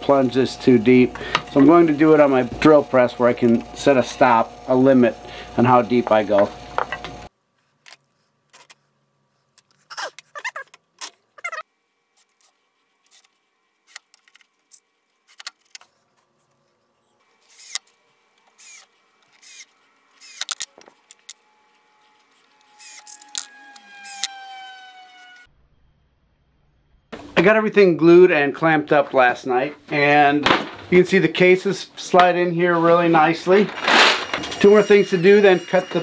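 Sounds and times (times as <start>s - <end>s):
screws clicking and rattling: 17.4s - 21.4s, 22.6s - 24.4s
cordless drill driving screws: 18.5s - 21.4s, 22.5s - 25.4s.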